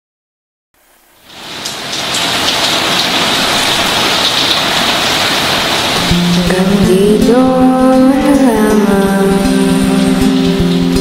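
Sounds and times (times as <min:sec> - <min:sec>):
steady rain: 0:00.8 - 0:11.0.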